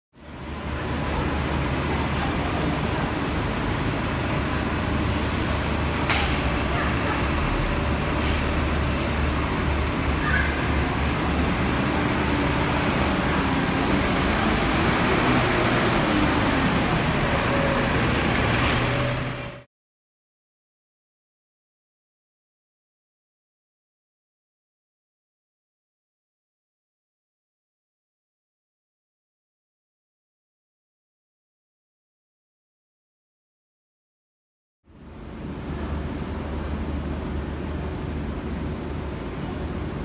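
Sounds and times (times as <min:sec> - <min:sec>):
diesel bus engine idling: 0:00.3 - 0:19.6.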